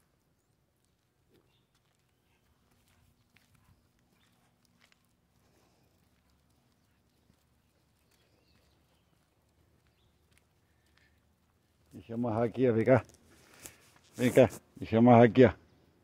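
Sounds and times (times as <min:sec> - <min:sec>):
faint footsteps on paved path: 0:00.0 - 0:16.0.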